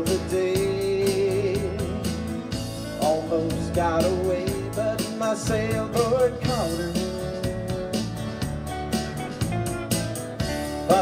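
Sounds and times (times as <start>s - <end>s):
bass: 0.0s - 11.0s
drums keeping a steady beat: 0.0s - 11.0s
strummed acoustic guitars: 0.0s - 11.0s.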